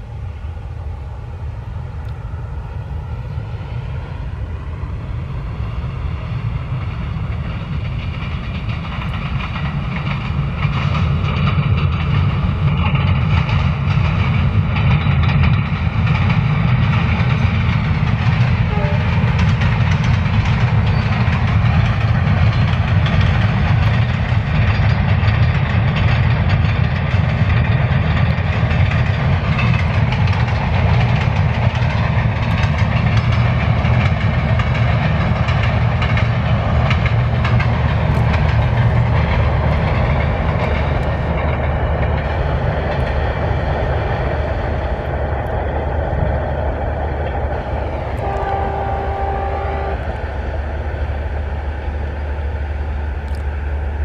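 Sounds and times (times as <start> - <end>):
train rumbling over bridge: 0.0 - 54.0.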